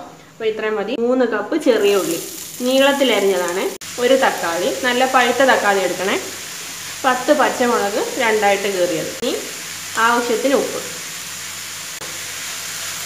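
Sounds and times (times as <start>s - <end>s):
person talking: 0.4s - 6.3s, 7.0s - 11.0s
shallots sizzling in hot oil: 1.7s - 13.0s.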